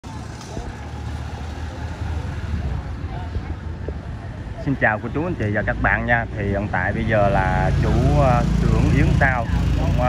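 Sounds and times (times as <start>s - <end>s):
faint voices: 0.0s - 10.0s
vehicles rumbling on street: 0.0s - 10.0s.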